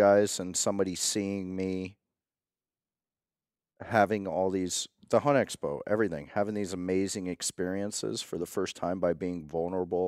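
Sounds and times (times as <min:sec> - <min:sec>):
man talking: 0:00.0 - 0:02.0, 0:03.8 - 0:10.0.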